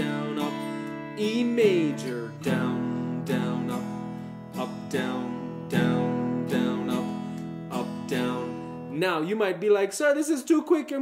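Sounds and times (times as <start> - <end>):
acoustic guitar strumming: 0.0 - 9.6.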